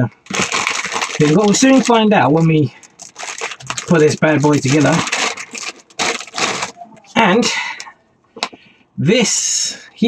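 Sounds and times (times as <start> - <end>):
plastic bags crinkling: 0.1 - 6.8.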